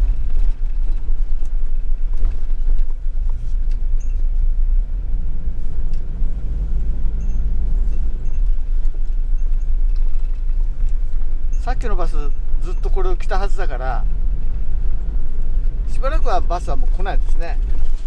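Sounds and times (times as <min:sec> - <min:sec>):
van engine and road rumble: 0:00.0 - 0:18.0.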